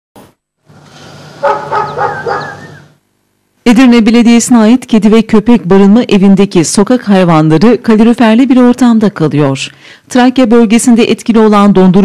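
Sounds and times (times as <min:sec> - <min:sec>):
loud dog barks: 0:01.4 - 0:02.8
dogs barking: 0:01.4 - 0:02.9.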